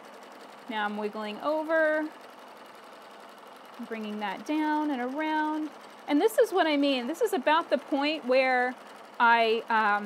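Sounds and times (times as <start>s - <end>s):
sewing machine running: 0.0s - 10.0s.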